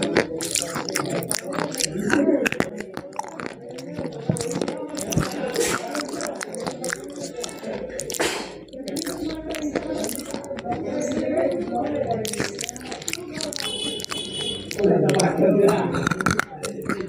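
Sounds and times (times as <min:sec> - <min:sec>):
chewing and crunching: 0:00.0 - 0:17.0
mouth clicks: 0:00.0 - 0:17.0
steady murmur: 0:00.0 - 0:17.0.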